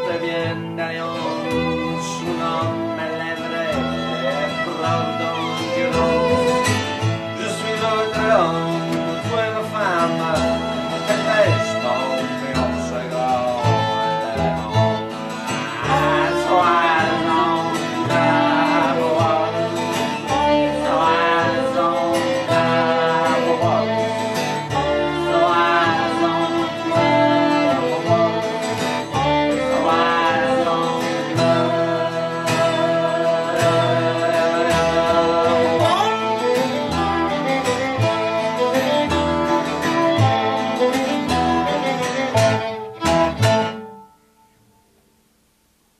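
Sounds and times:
upright bass: 0.0s - 44.0s
fiddle melody: 0.0s - 44.6s
dobro melody: 0.0s - 45.4s
acoustic guitar: 0.0s - 45.9s.

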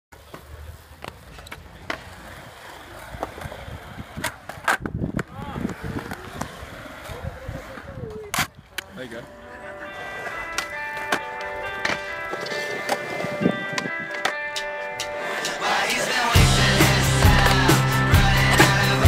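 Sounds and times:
skateboards clacking on ground: 0.1s - 16.2s
skateboard wheels rolling on concrete: 0.1s - 19.0s.

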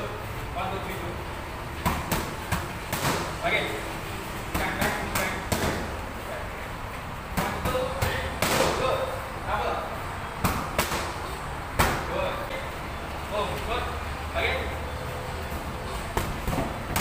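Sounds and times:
boxing gloves hitting pads: 1.8s - 3.5s, 4.5s - 6.0s, 7.3s - 9.0s, 10.4s - 12.2s, 15.5s - 17.0s.

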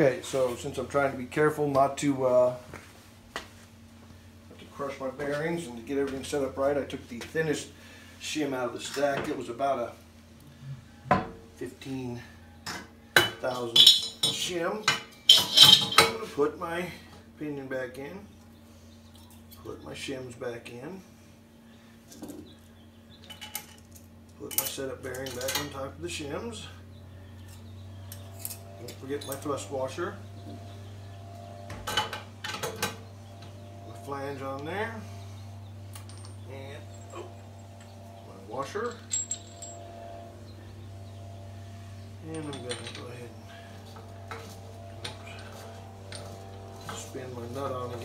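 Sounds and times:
metal parts being handled: 13.7s - 14.5s, 15.1s - 16.2s, 35.9s - 40.4s, 42.2s - 47.1s
low hum: 21.1s - 48.0s.

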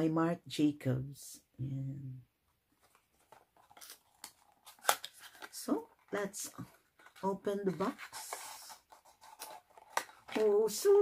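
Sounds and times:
card scraping and rustling: 2.7s - 10.6s.

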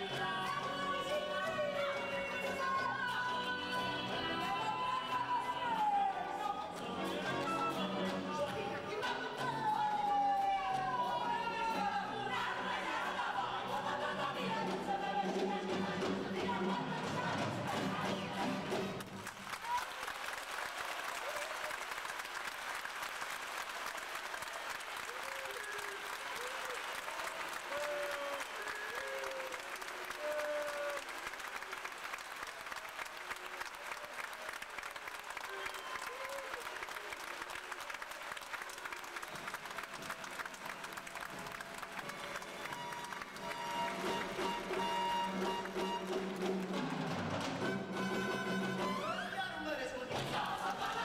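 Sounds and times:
audience calls: 16.1s - 49.6s
audience applauding: 17.9s - 49.1s, 50.2s - 51.0s.

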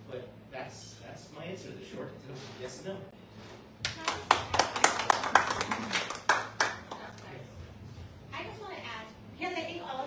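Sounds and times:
audience clapping: 3.8s - 7.2s.

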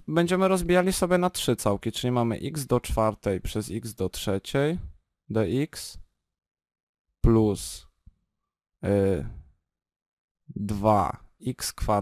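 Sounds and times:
man's wordless vocal sound: 8.8s - 9.5s.

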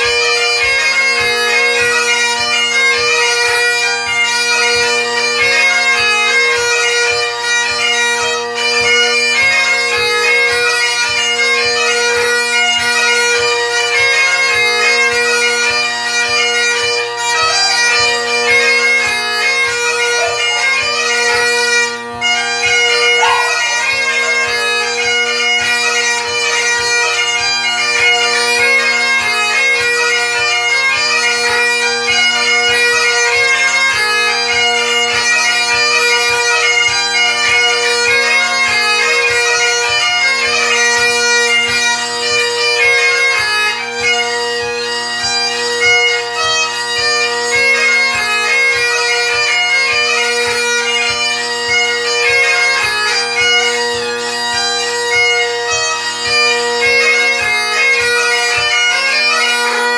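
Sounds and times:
bagpipe chanter melody: 0.0s - 59.9s
bagpipe drones humming: 0.0s - 59.9s.

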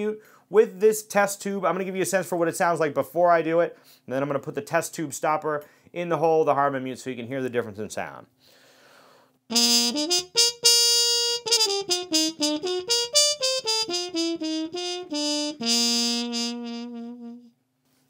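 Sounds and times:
muted trumpet playing: 9.5s - 17.6s.

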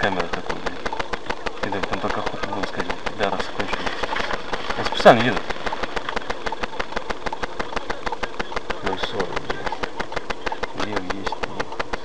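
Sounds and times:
car engine idling: 0.0s - 12.0s
steady ticking: 0.0s - 12.0s.

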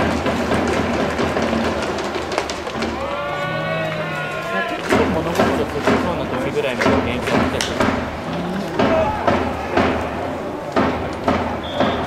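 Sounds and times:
ballpark crowd: 0.0s - 12.0s.

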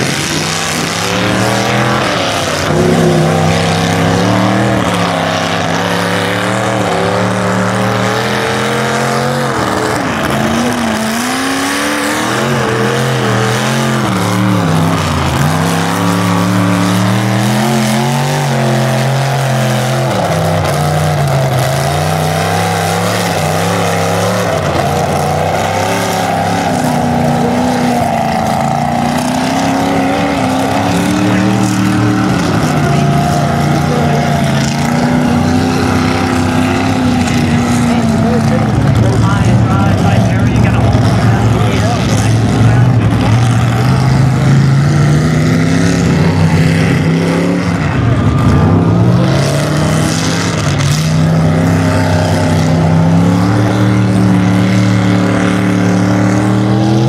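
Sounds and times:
truck engine revving hard: 0.0s - 57.0s.

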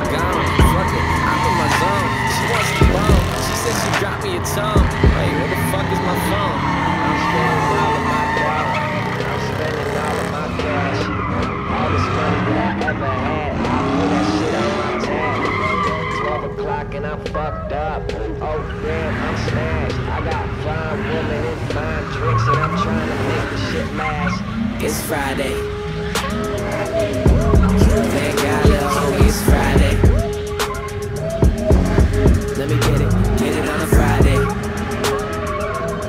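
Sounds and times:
crowd voices: 0.0s - 36.0s
truck engine revving: 0.0s - 36.0s
tyres screeching on asphalt: 0.0s - 36.0s.

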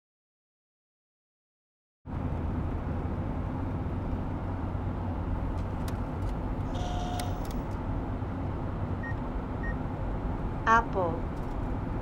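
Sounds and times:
road and engine drone: 2.1s - 12.0s.

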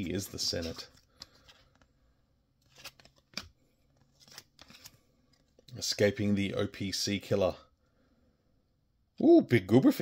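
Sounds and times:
trading cards sliding: 2.6s - 5.6s.

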